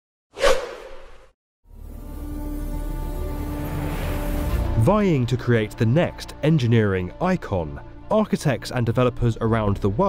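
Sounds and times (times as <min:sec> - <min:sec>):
whoosh sound effect: 0:00.4 - 0:01.3
background music: 0:01.7 - 0:10.0.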